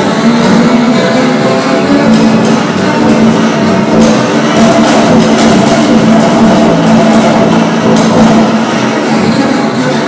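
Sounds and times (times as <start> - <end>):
bowed double bass: 0.0 - 10.0.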